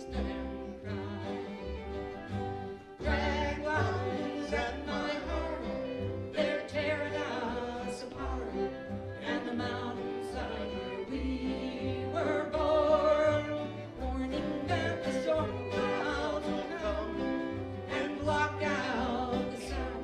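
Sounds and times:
bowed fiddle: 0.0s - 20.0s
plucked upright bass: 0.0s - 20.0s
strummed acoustic guitars: 0.0s - 20.0s.

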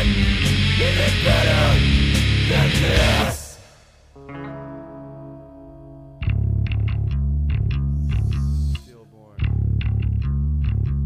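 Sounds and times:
metal band chugging riff: 0.0s - 3.7s
held guitar chord: 4.2s - 10.2s.

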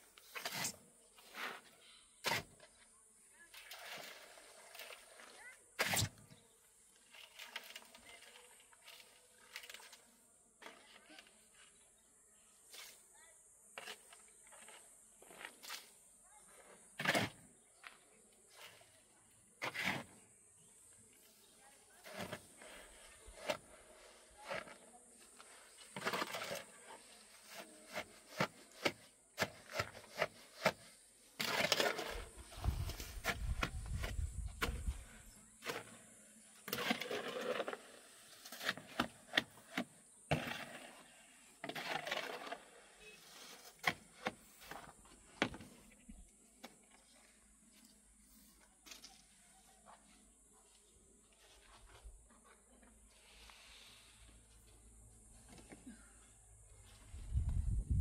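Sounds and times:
scraping on rock and earth: 22.0s - 45.9s.

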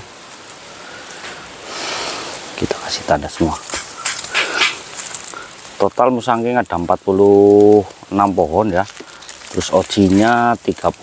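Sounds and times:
plastic tags rustling: 3.2s - 11.0s.

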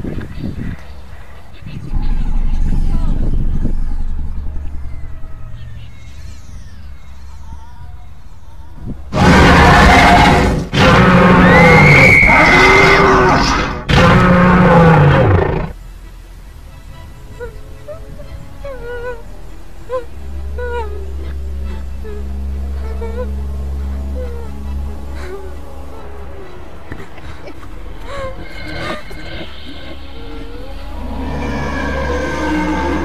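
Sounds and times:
low horror drone rumble: 0.0s - 33.0s
eerie held tones: 1.9s - 13.5s, 16.3s - 33.0s
loud roar dropping in pitch: 9.1s - 15.8s, 28.7s - 33.0s.

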